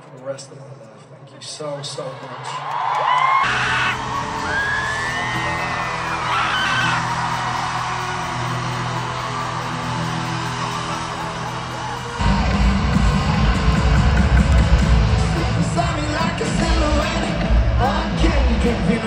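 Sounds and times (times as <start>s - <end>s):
crowd cheering and screaming: 2.2s - 19.0s
live band playing: 3.6s - 19.0s
heavy drums and bass: 11.6s - 19.0s.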